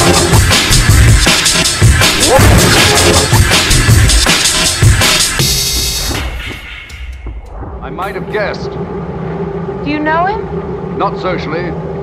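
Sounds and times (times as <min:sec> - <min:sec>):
deep low rumble: 0:07.1 - 0:12.0.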